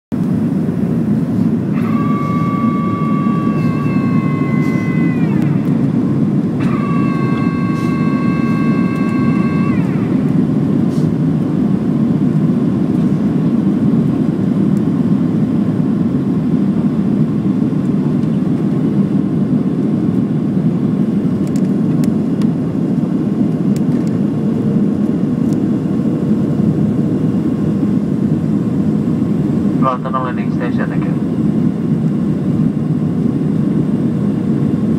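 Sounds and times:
high steady whine: 0:00.1 - 0:34.9
jet airliner cabin roar: 0:00.1 - 0:34.9.

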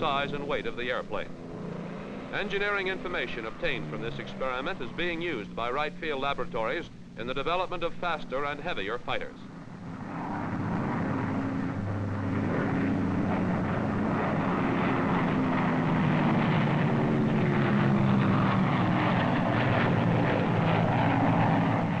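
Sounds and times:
propeller plane engines droning: 0:00.0 - 0:22.0.

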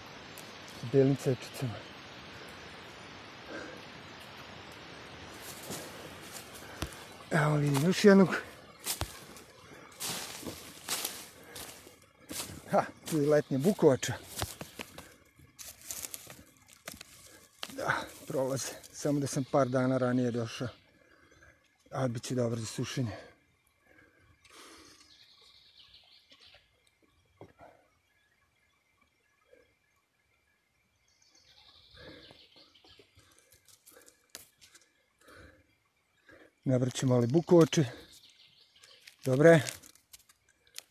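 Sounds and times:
footsteps in dry leaves: 0:05.3 - 0:18.8, 0:38.9 - 0:40.9
faint rustling: 0:05.3 - 0:19.0.

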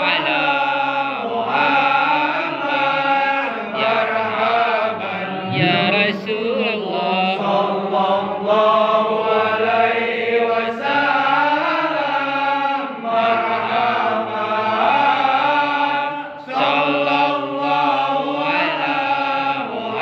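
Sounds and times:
men chanting together: 0:00.0 - 0:20.0
person chanting into a microphone: 0:00.0 - 0:20.0.

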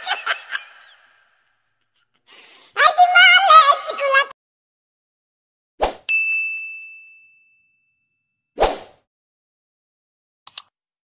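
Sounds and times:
bell-like ding: 0:06.1 - 0:08.5.

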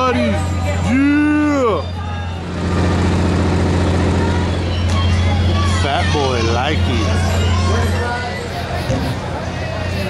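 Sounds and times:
low mechanical hum: 0:00.0 - 0:10.0
outdoor background noise: 0:00.0 - 0:10.0.

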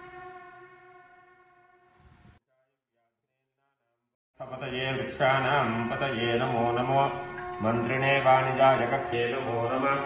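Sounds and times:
man chanting: 0:02.5 - 0:10.0.

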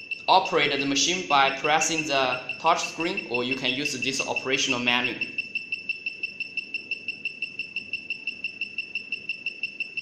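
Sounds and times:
high-pitched pulsing tone: 0:00.0 - 0:10.0.

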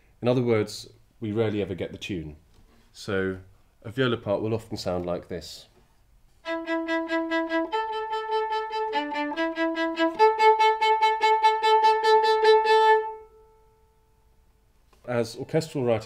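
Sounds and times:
solo viola repeated notes: 0:06.4 - 0:14.2.

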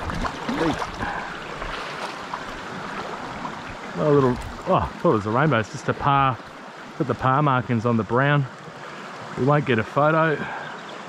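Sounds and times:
water splashes and knocks: 0:00.0 - 0:06.6
creek water running over stones: 0:00.0 - 0:11.0.

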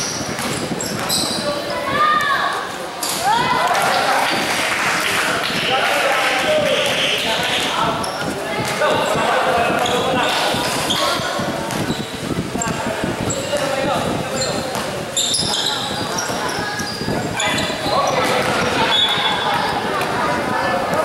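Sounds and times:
basketball bouncing on court: 0:00.0 - 0:01.4, 0:08.1 - 0:12.0, 0:14.6 - 0:16.9, 0:17.6 - 0:20.1
short high squeaks: 0:00.0 - 0:01.4, 0:14.3 - 0:18.2
shouts and chatter: 0:00.7 - 0:21.0.

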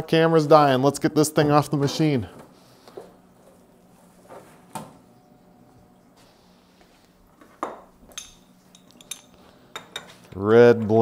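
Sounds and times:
faint steady hum: 0:00.0 - 0:11.0
metallic clinks of vise handle: 0:08.2 - 0:09.3.

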